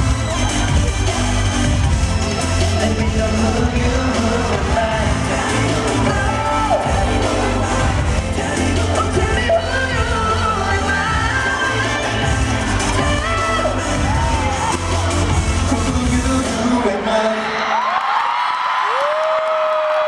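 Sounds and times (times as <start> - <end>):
crowd screaming and cheering: 0.0 - 20.0
pop song over arena speakers: 0.0 - 20.0.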